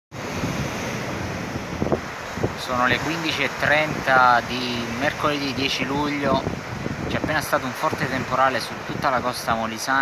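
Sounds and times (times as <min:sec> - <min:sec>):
waves breaking on rocks: 0:00.2 - 0:10.0
wind buffeting microphone: 0:00.2 - 0:10.0.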